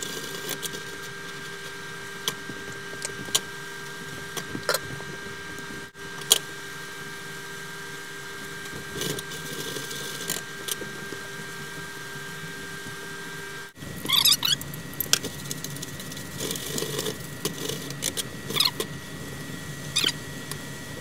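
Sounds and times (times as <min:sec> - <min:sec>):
steady hum: 0:00.0 - 0:21.0.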